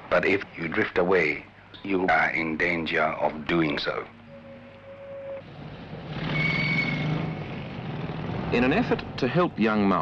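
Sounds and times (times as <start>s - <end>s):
city street traffic: 0.0s - 10.0s
thin high tone: 3.6s - 5.5s.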